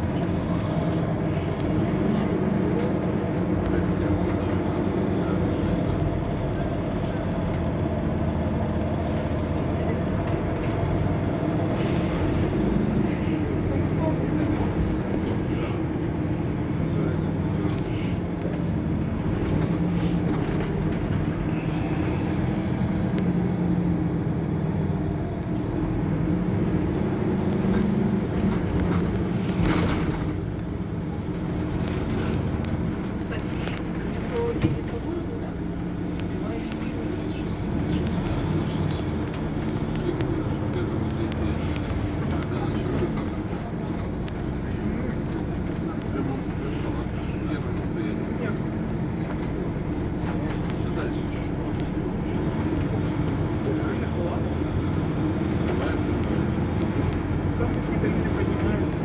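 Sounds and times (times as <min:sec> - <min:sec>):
bus diesel engine idling: 0:00.0 - 0:59.0.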